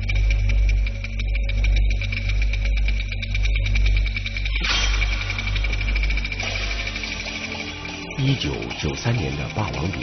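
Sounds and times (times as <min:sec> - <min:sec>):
deep low drone: 0:00.0 - 0:10.0
rapid clicking ticks: 0:00.0 - 0:10.0
steady high tone: 0:04.5 - 0:10.0.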